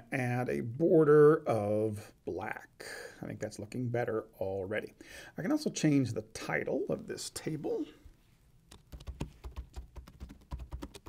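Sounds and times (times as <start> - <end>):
computer keyboard typing: 8.7 - 11.0.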